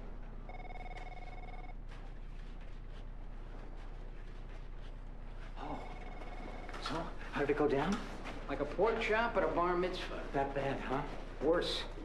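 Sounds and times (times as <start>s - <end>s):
telephone ringing: 0.5s - 1.8s, 5.6s - 7.0s.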